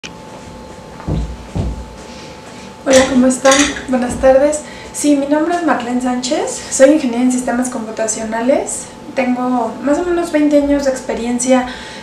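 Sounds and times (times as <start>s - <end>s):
faint steady hum: 0.0s - 12.0s
dull thumps: 1.0s - 2.0s, 3.6s - 4.5s.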